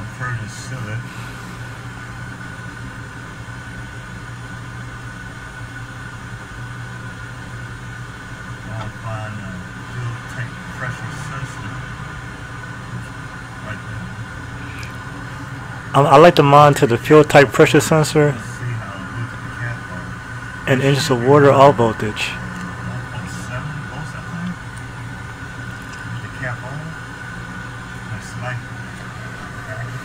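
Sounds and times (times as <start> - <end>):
car engine idling: 0.0 - 30.0
faint voices: 8.7 - 11.9.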